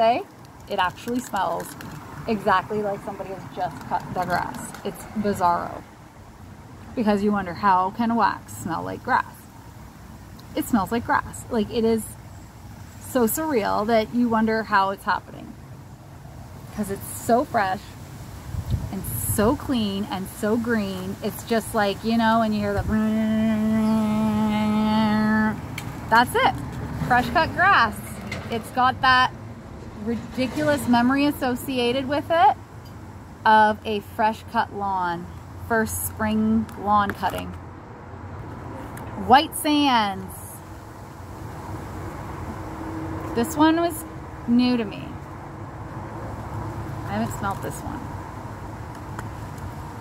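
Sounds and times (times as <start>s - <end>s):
woman humming long note: 23.2s - 25.4s.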